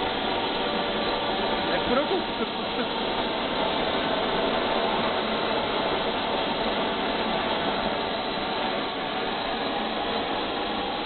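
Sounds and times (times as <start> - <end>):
model jet turbine running: 0.0 - 11.0.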